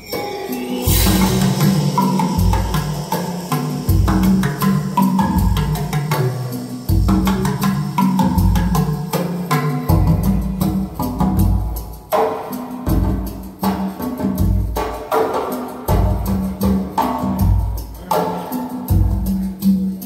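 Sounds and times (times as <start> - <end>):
sharp percussion hits: 0.0 - 20.0
deep bass notes: 0.9 - 9.0.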